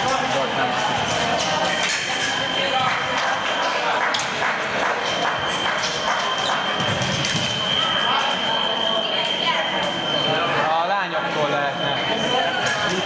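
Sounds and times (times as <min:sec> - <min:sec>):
voices: 0:00.0 - 0:13.0
steady high electronic tone: 0:05.2 - 0:13.0.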